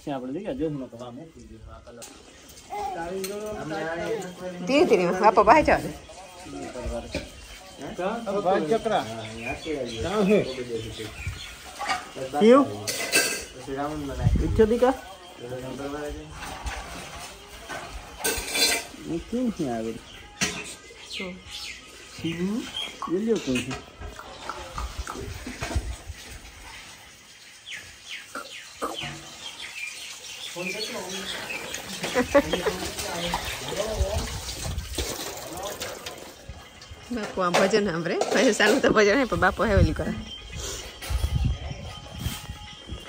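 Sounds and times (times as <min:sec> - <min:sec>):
birds chirping: 0:00.0 - 0:43.0.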